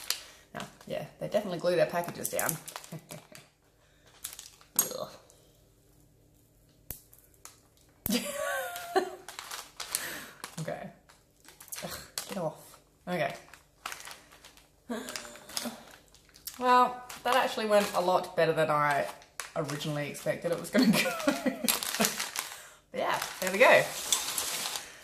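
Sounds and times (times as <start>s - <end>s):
knife scraping wax and glass: 23.9s - 24.7s.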